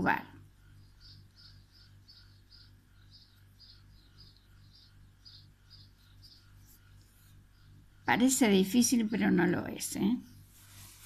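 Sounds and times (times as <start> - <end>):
steady low hum: 0.0 - 11.0
soft high-pitched chirps: 0.6 - 7.8.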